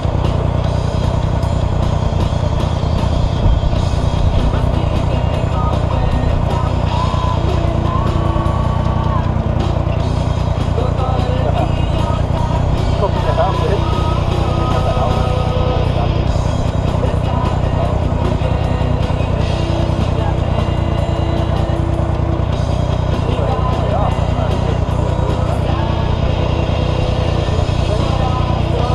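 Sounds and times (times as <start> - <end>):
buggy engine idling: 0.0 - 28.9
music: 0.0 - 28.9
voices: 0.0 - 28.9.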